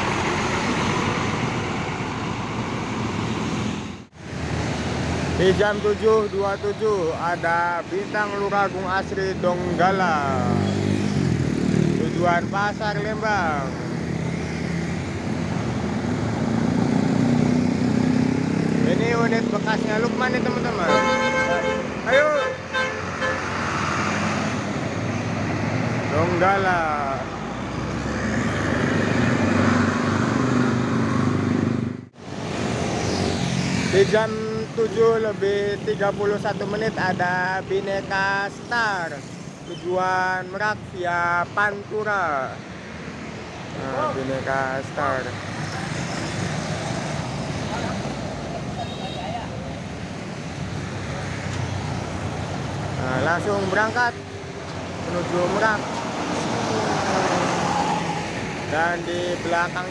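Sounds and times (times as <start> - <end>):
bus diesel engine running: 0.0 - 4.3
street traffic: 0.0 - 59.9.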